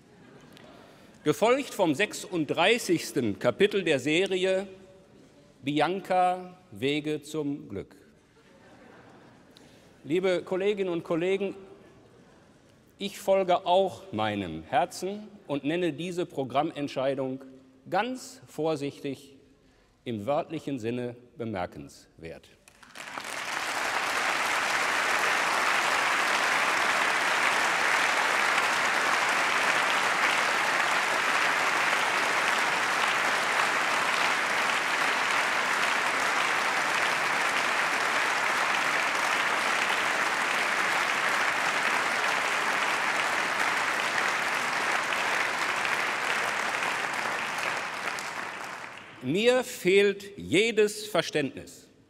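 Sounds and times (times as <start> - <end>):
large crowd clapping: 0.0 - 1.1, 22.6 - 49.4.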